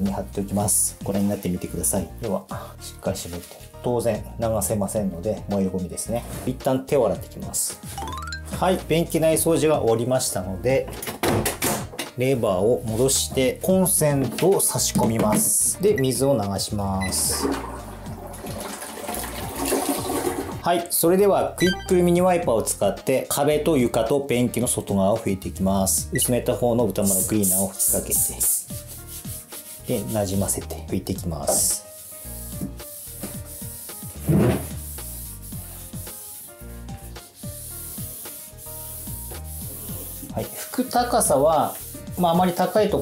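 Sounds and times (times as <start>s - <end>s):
background music: 0.0s - 43.0s
toilet flushing: 17.0s - 20.6s
paper towel wiping a wall: 28.7s - 30.7s, 31.4s - 43.0s.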